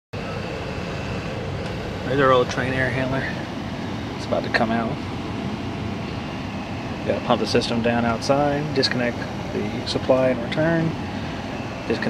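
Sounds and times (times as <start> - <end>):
faint high whine: 0.2 - 12.0
hvac hum and rushing air: 0.2 - 12.0.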